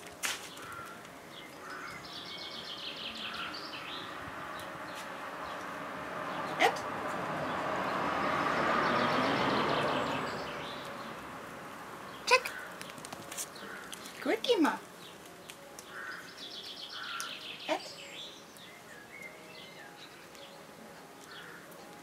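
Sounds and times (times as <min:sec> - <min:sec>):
small birds chirping: 0:00.4 - 0:22.0.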